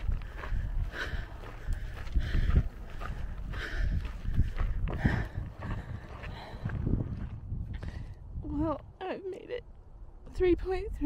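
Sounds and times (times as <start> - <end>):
footsteps on dirt trail: 0.0 - 8.2.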